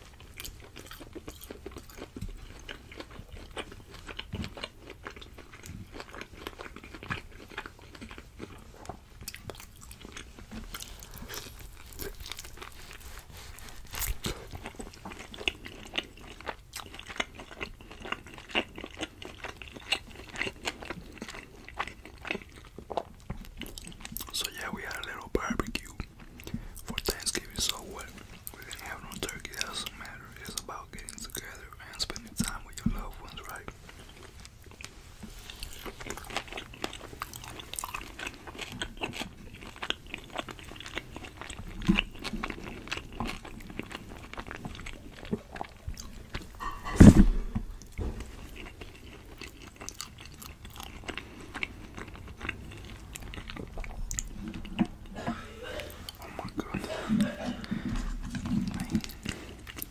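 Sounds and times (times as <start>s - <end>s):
chewing food: 0.0s - 59.9s.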